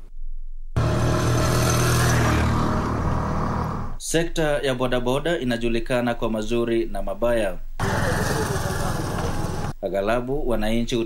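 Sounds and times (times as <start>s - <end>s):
motorcycle engines running: 0.8s - 4.0s, 7.8s - 9.8s.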